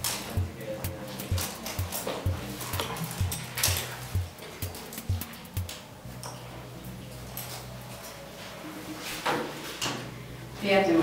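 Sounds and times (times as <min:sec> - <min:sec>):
crisp high percussion: 0:00.0 - 0:05.9
low thumping beat: 0:00.0 - 0:06.0.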